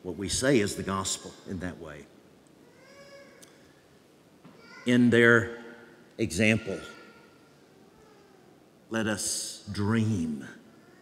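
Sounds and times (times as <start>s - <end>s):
faint high-pitched cry: 2.6s - 3.8s, 4.5s - 5.3s, 6.5s - 8.6s, 10.7s - 11.0s.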